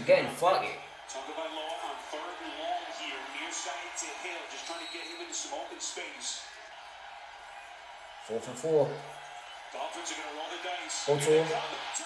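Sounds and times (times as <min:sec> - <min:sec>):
sports announcer talking: 0:00.0 - 0:06.5, 0:08.3 - 0:09.0, 0:09.7 - 0:12.0.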